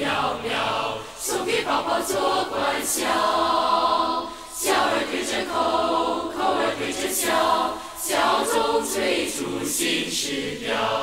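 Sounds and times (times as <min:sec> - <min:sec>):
choir singing pop song: 0:00.0 - 0:11.0.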